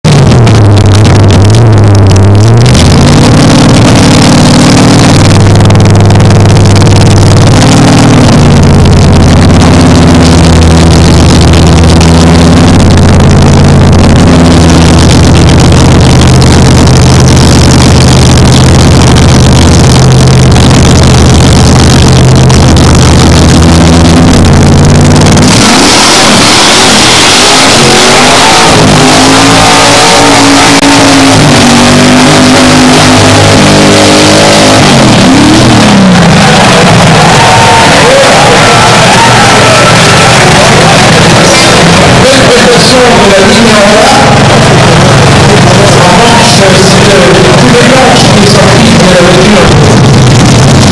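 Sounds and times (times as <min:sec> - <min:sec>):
drag racing engines idling and revving: 0:00.0 - 0:50.9
loud rushing noise: 0:00.0 - 0:50.9.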